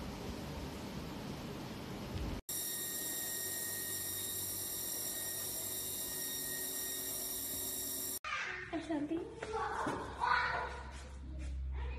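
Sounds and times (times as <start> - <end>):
high-pitched whining tones: 2.5 - 8.2.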